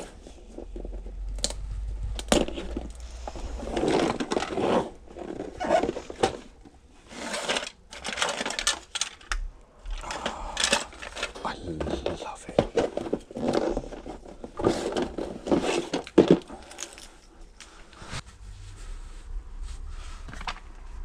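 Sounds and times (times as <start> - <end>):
plastic game pieces clattering: 7.4 - 9.3, 9.9 - 14.0
person speaking indistinctly: 10.0 - 13.0.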